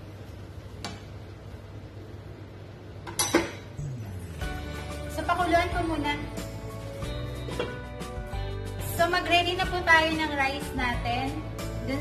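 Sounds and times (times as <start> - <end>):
steady low hum: 0.0 - 7.2
metal cookware clattering: 3.1 - 3.7.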